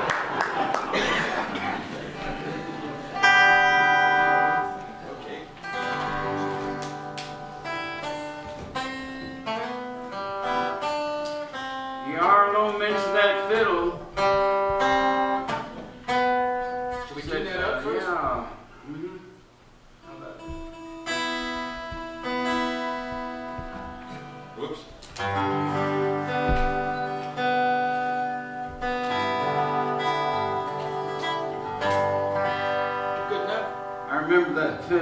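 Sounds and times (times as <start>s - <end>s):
acoustic guitars playing: 0.0s - 35.0s.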